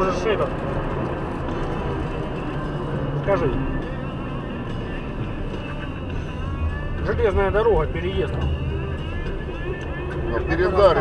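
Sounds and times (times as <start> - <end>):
road noise: 0.0 - 11.0
vehicle hum: 0.0 - 11.0.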